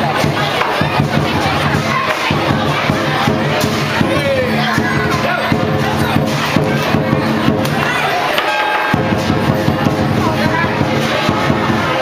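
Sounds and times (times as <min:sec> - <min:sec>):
drum strikes: 0:00.0 - 0:12.0
loud crowd noise: 0:00.0 - 0:12.0
cymbal strikes: 0:00.2 - 0:12.0.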